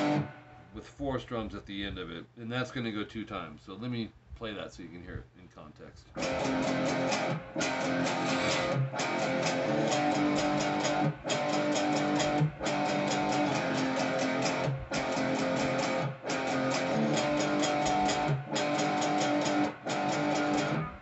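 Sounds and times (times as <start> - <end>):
electric guitar power-chord riff: 0.0 - 0.6, 6.2 - 21.0.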